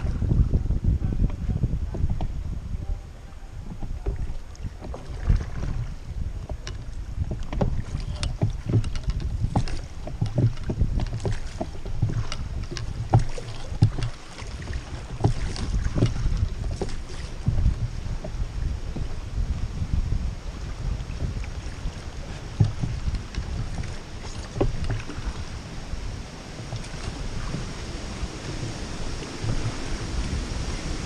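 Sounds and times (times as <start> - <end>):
water lapping against raft: 0.0 - 31.0
wind rumble on microphone: 0.0 - 31.0
small splashes and knocks: 3.6 - 19.2, 21.1 - 25.6, 26.4 - 31.0.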